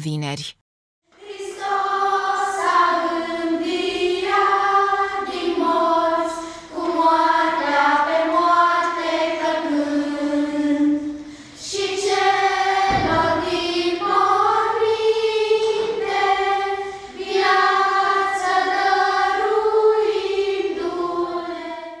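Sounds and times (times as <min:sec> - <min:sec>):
children's choir singing: 0:01.1 - 0:22.0
short breaths: 0:06.4 - 0:06.7, 0:11.1 - 0:11.6
brief low thump: 0:12.9 - 0:14.0.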